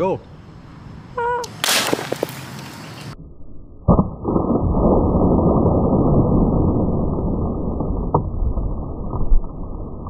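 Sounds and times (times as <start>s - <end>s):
plastic bottle bursting bang: 1.6s - 2.4s.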